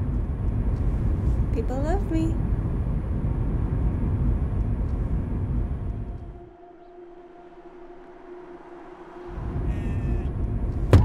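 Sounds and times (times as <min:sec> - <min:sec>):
car cabin road and engine noise: 0:00.0 - 0:06.4
hum of two held tones: 0:00.0 - 0:11.0.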